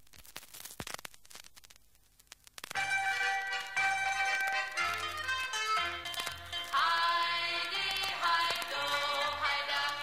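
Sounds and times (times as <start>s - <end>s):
crackling clicks: 0.0s - 10.0s
low scratchy hiss: 0.0s - 10.0s.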